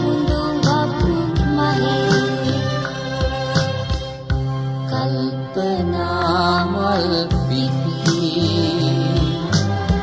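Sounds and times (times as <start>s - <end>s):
pop song with instrumental backing: 0.0s - 10.0s.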